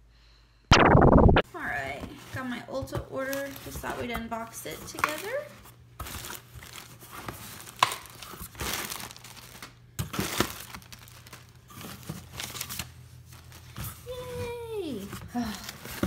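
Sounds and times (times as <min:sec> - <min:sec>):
plastic packaging crinkling: 0:04.8 - 0:13.7.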